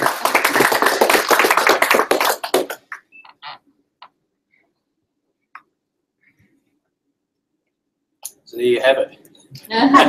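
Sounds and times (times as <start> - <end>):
group applauding: 0.0 - 3.1.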